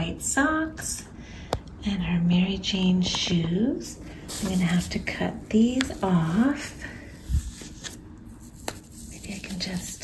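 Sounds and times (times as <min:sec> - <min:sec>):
packaging foam rustling: 0:04.2 - 0:10.0.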